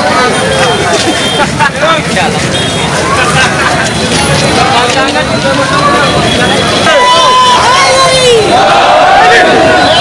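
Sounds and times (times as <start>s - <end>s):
crowd shouting: 2.4s - 10.0s.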